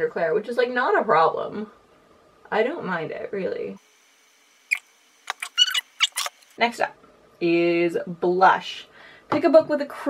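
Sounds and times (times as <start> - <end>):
brief squeak: 4.7 - 6.4.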